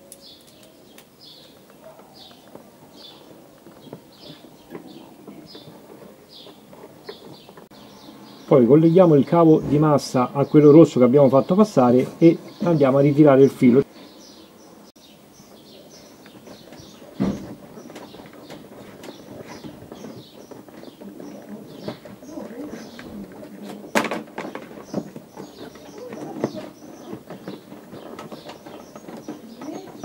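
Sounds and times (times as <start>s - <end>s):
small birds chirping: 0.0s - 30.0s.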